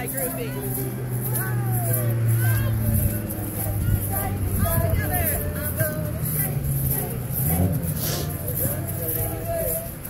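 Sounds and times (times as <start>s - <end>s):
children's and adults' voices: 0.0s - 10.0s
egg shakers shaken rhythmically: 0.0s - 10.0s.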